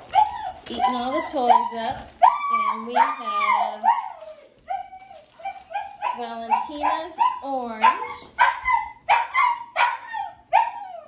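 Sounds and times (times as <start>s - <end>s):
puppy yipping: 0.0s - 11.0s.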